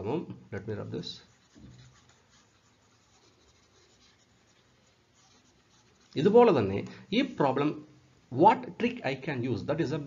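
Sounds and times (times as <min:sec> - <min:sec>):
stylus scratching on tablet: 0:00.8 - 0:07.6.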